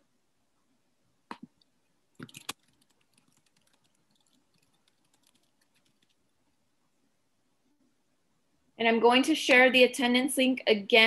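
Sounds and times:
typing on computer keyboard: 2.2 - 6.2.

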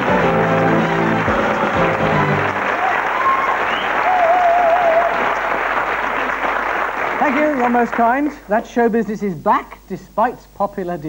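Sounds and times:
audience applauding: 0.0 - 8.7.

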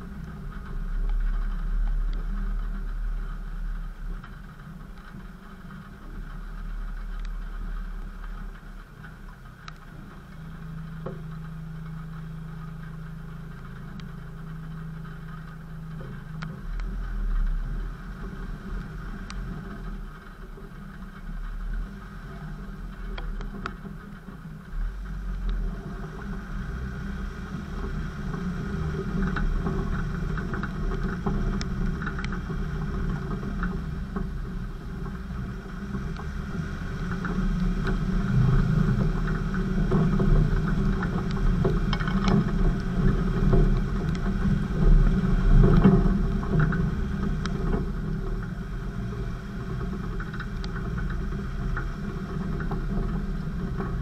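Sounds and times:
off-road vehicle engine: 0.0 - 54.0
small clicks and knocks: 37.0 - 54.0.

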